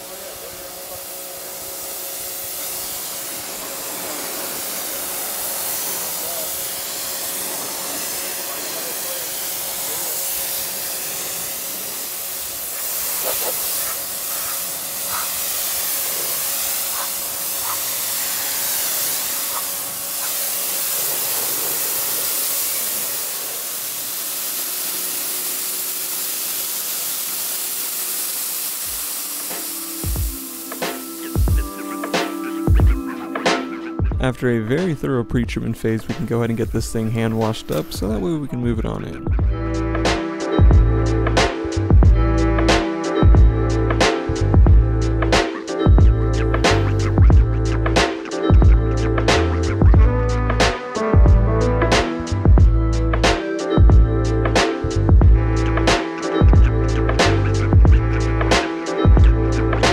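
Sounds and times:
pressure washer spraying: 0:00.0 - 0:35.0, 0:35.6 - 0:38.6, 0:39.2 - 0:59.9.

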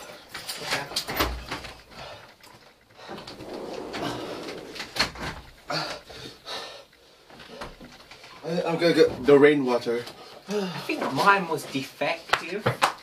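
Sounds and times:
people breathing hard: 0:01.8 - 0:08.2, 0:10.1 - 0:11.0
low moans: 0:03.1 - 0:06.0.

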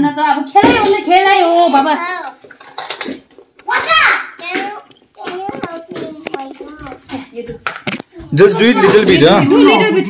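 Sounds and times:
child speaking: 0:01.9 - 0:02.4, 0:03.6 - 0:10.0.

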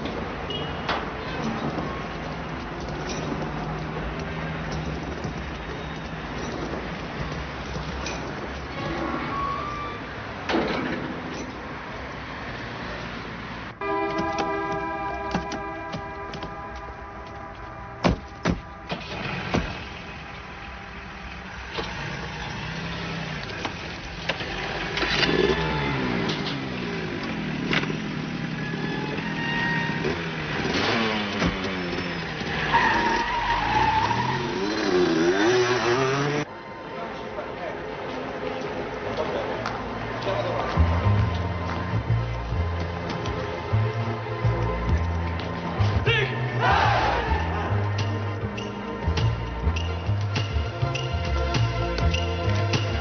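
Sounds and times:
horn blast: 0:13.8 - 0:20.0
car engine revving: 0:29.8 - 0:36.5.

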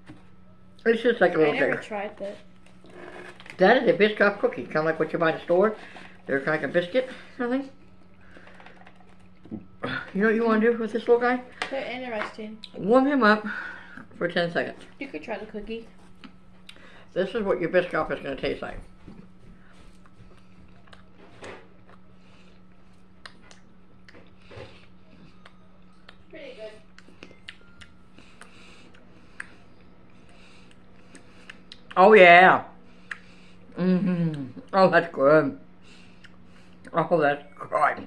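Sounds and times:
low electrical hum: 0:00.0 - 0:38.0
person chewing a cookie: 0:19.8 - 0:26.3, 0:26.9 - 0:32.0, 0:32.9 - 0:34.8, 0:36.0 - 0:36.9.

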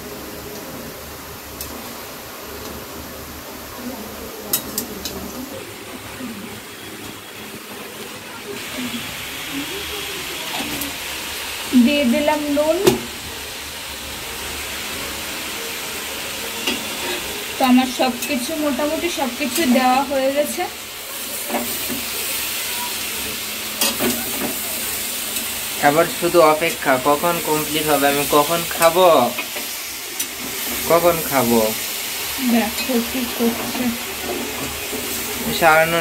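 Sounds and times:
vegetables sizzling in a pan: 0:00.0 - 0:36.0.

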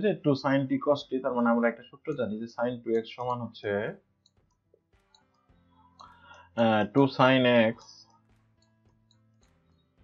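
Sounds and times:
man speaking: 0:00.0 - 0:04.0, 0:06.6 - 0:08.1.

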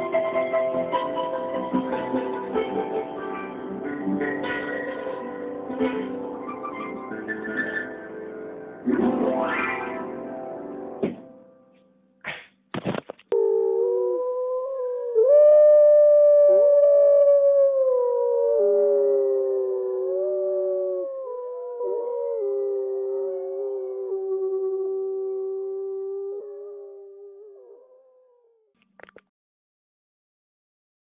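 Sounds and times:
dogs howling: 0:13.3 - 0:28.4.

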